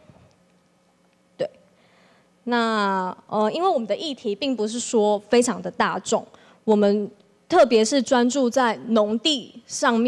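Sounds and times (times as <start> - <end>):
sharp catch of breath: 1.8 - 2.3.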